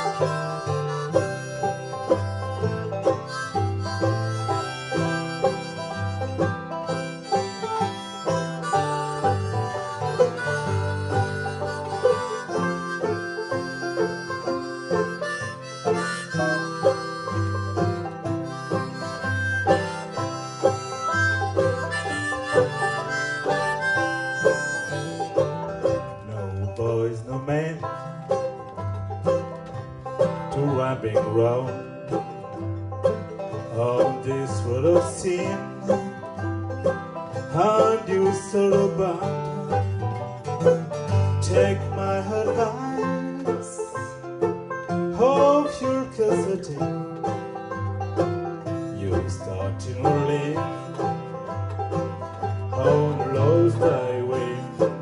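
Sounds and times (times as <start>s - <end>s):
harmonica lead: 0.0s - 26.6s, 27.7s - 55.0s
acoustic guitar bass line: 0.0s - 55.0s
banjos picking: 0.0s - 55.0s.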